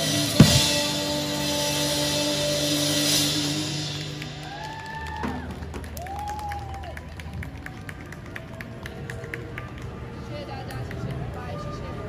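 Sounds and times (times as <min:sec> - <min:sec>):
sparse crowd clapping: 0:04.4 - 0:10.0.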